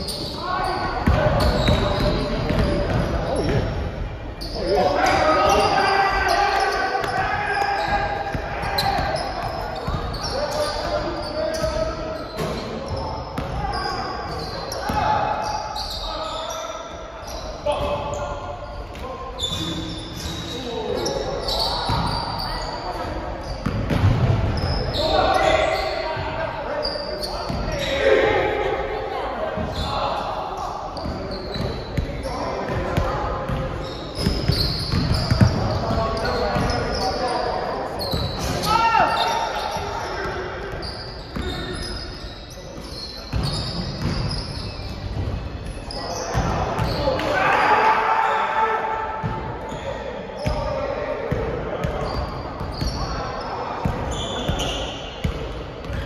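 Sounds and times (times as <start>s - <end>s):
players' voices echoing: 0.0s - 56.0s.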